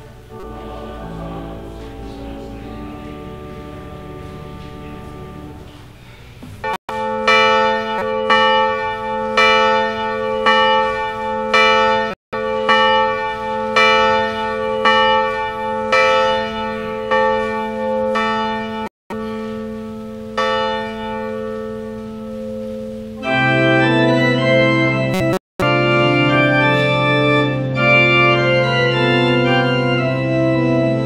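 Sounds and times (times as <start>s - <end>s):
church bell tolling: 0.0s - 5.8s, 6.6s - 25.0s, 25.6s - 31.0s.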